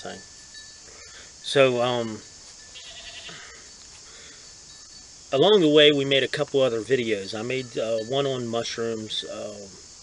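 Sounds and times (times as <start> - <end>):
faint high trill: 0.0 - 3.8
faint background hiss: 0.0 - 10.0.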